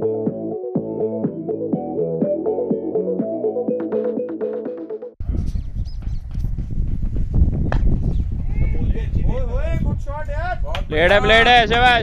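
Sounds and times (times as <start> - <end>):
wind buffeting microphone: 5.2 - 12.0.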